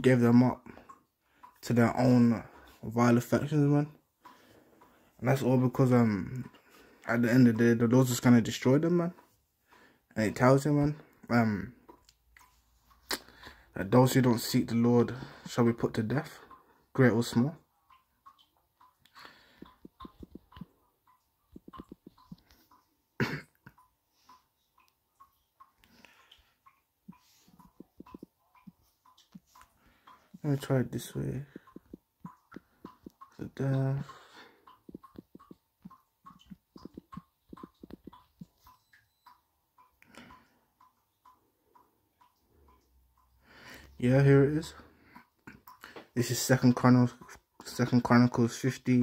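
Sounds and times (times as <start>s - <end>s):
finger tapping on touchscreen: 21.5s - 22.4s, 34.8s - 35.6s
person coughing: 23.2s - 23.7s
typing on touchscreen keyboard: 34.8s - 39.3s.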